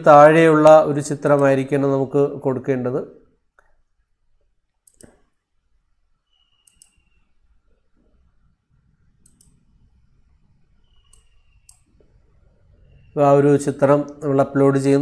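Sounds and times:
computer mouse clicks: 4.7 - 5.4, 6.3 - 7.4, 9.1 - 12.2.

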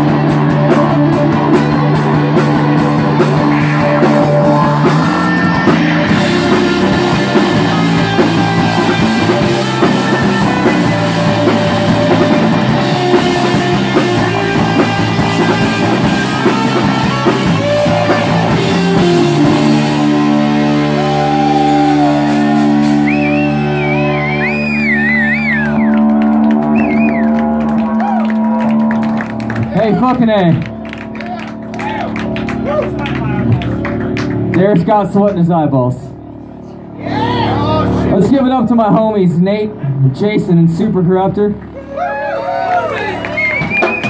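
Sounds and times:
live rock band playing: 0.0 - 44.0
high guitar squeals: 3.4 - 29.0
person shouting: 4.7 - 6.2, 37.0 - 38.1
scattered clapping: 25.5 - 35.5, 42.6 - 44.0.

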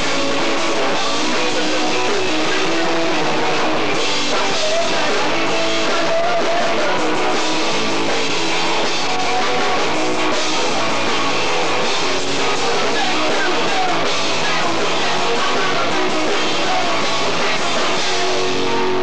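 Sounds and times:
person singing: 0.0 - 7.7, 12.5 - 19.0
drum kit: 0.0 - 19.0
electric guitar: 0.0 - 19.0.

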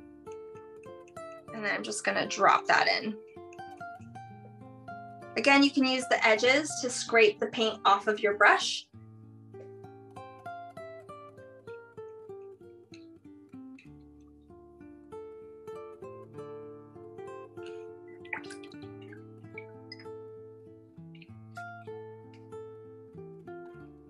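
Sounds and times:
acoustic guitar plucked melody: 0.0 - 7.8, 8.9 - 24.0.

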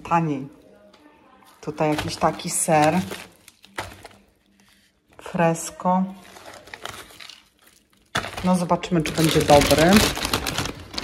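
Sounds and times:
plastic cling film crinkling: 0.0 - 11.0.

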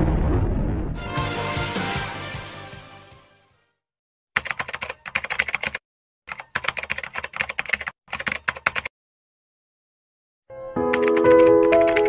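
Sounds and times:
computer keyboard typing: 4.4 - 8.9, 10.9 - 12.0.

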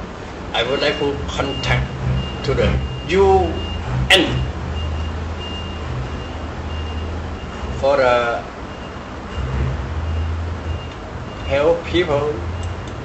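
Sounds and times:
steady low rumble: 0.0 - 13.0
high electronic beeps: 0.6 - 11.8.

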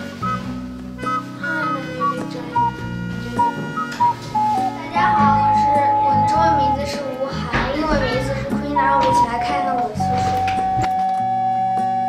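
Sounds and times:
background music melody: 0.0 - 12.0
child's voice: 1.4 - 2.7, 4.6 - 10.4.

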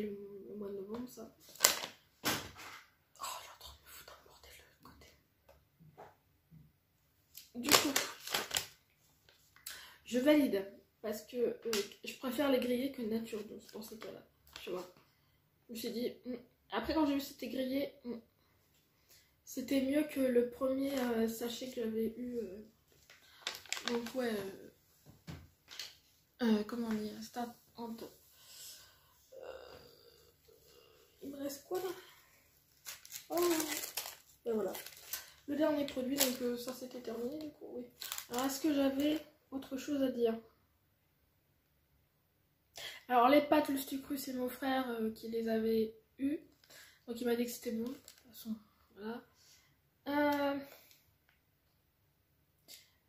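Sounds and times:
paper snack packet crinkling: 1.4 - 2.0, 7.4 - 8.8, 23.0 - 24.5, 32.7 - 39.3, 47.6 - 48.4
bag rustling: 32.7 - 35.5.

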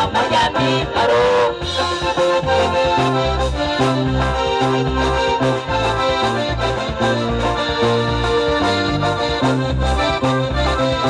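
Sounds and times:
accordion melody: 0.0 - 11.0
bass line: 0.0 - 11.0
drum kit beat: 1.2 - 11.0.

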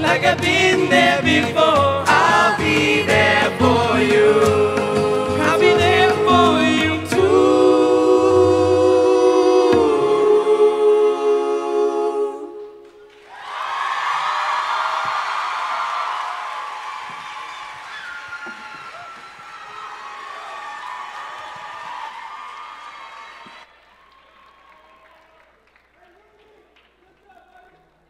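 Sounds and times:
vocal group holding a chord: 0.0 - 13.1
audience applause and cheering: 12.8 - 27.9.

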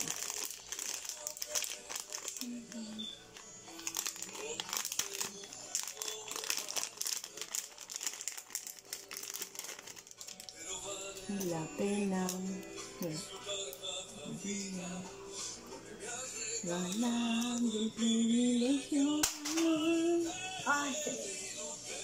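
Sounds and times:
plastic bag crinkling: 0.0 - 10.7
faint background music: 0.0 - 22.0.

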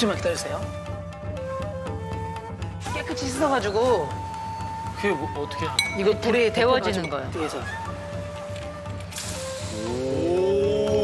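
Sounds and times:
broth sizzling in a hot bowl: 9.1 - 10.7
voices saying a rising oh: 9.7 - 11.0.

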